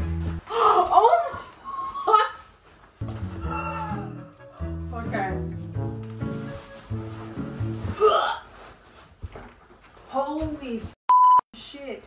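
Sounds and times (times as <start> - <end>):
background music with chords: 3.0 - 8.0
woman's strained cry: 3.4 - 4.2.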